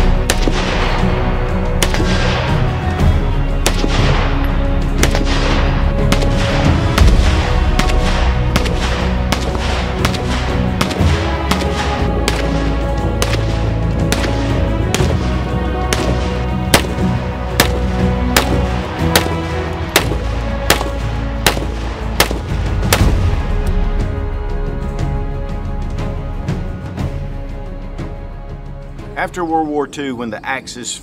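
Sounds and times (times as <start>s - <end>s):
background music: 0.0s - 31.0s
rifle firing single shots: 0.2s - 1.0s, 1.7s - 2.4s, 3.6s - 4.3s, 5.0s - 15.3s, 15.9s - 23.2s.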